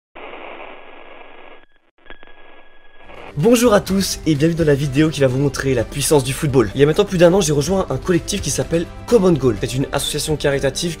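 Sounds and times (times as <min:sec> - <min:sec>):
radio static hiss: 0:00.2 - 0:03.4.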